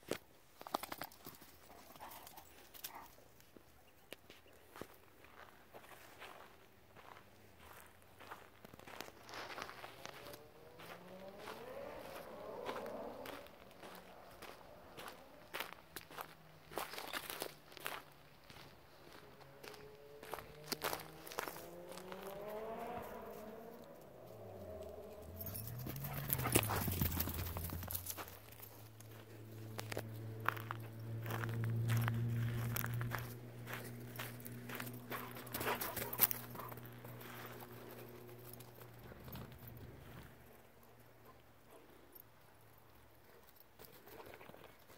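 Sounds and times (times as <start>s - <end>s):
footsteps crunching on dirt trail: 1.4s - 40.5s
low hum gliding in pitch: 19.2s - 40.1s.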